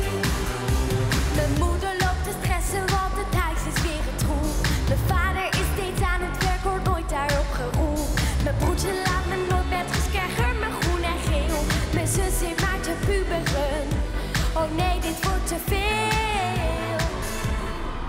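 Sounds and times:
dance beat: 0:00.0 - 0:17.6
girl singing pop song: 0:01.2 - 0:17.8.

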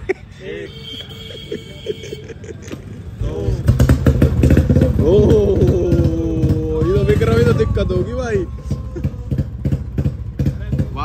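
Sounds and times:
motorcycle engine thumping: 0:02.7 - 0:11.0.

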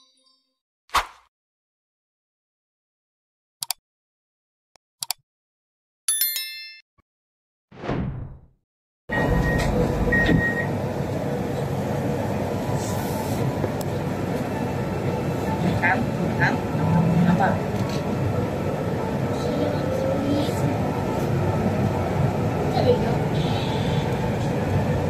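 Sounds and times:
metro train rumbling: 0:09.1 - 0:25.0.

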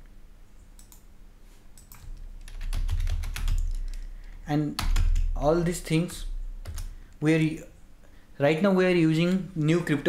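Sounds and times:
keyboard keystrokes clicking: 0:01.8 - 0:05.3.

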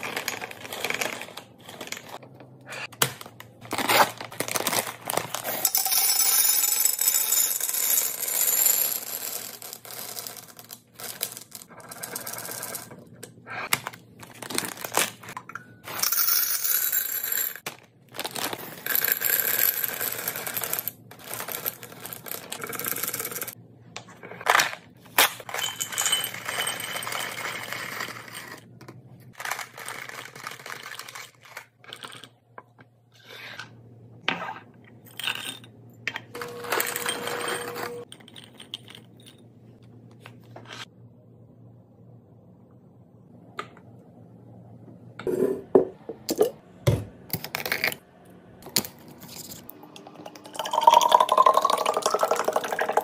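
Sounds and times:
plastic bags crinkling: 0:03.2 - 0:05.6, 0:14.2 - 0:15.4, 0:17.7 - 0:18.8
candies rattling into glass jars: 0:03.2 - 0:08.2, 0:14.2 - 0:23.5, 0:29.3 - 0:32.4.

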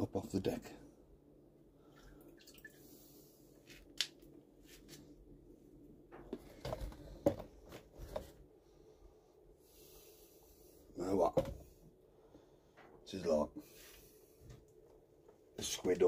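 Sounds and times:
water dripping and splashing: 0:01.9 - 0:02.9.

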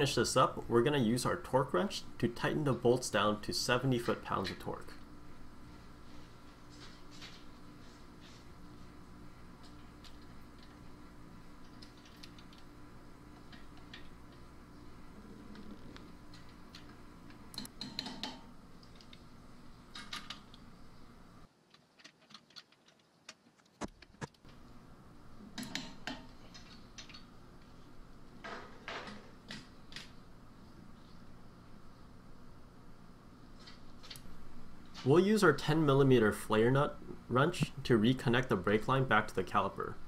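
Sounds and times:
faint steady hum: 0:00.0 - 0:40.0.

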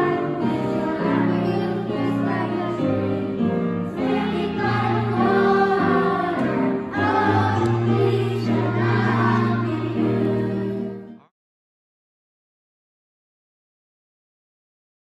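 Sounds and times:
choir singing a hymn-like song: 0:00.0 - 0:11.2.

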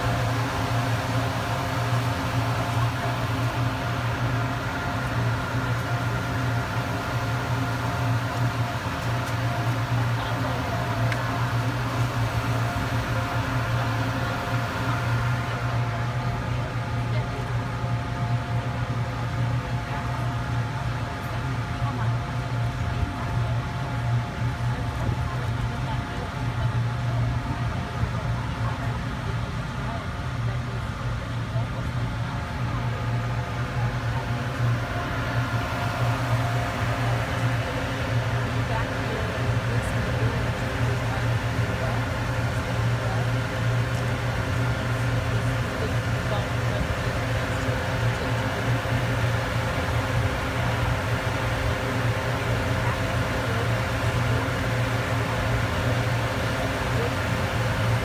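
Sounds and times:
ferry engine drone: 0:00.0 - 0:58.0.

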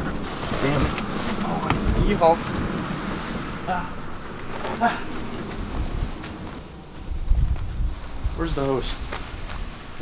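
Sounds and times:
knocks and rustles: 0:00.0 - 0:06.6.

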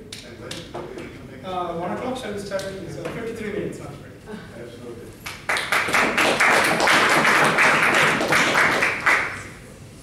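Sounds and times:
audience applauding: 0:05.3 - 0:09.5.

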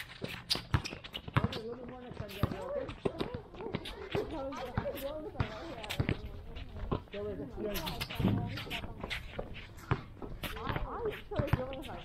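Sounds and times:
indistinct voices: 0:01.5 - 0:12.0.

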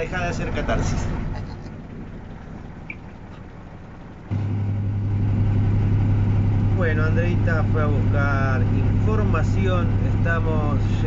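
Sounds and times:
diesel bus engine idling: 0:00.0 - 0:11.0.

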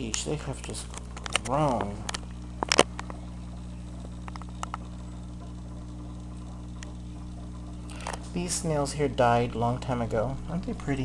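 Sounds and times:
low electrical hum: 0:00.0 - 0:11.0
faint ticks: 0:00.1 - 0:08.4.

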